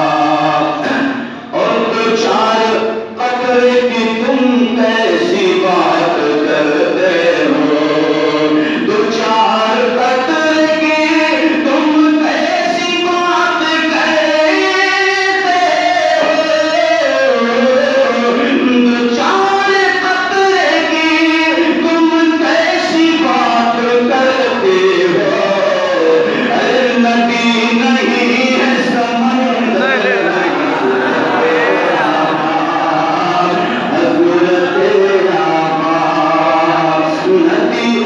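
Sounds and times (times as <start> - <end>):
man chanting over loudspeakers: 0.0 - 38.0.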